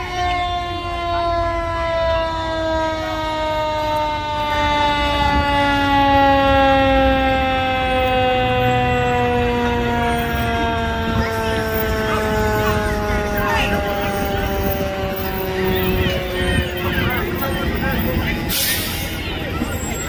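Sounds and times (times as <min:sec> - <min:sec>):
siren winding down: 0:00.0 - 0:20.0.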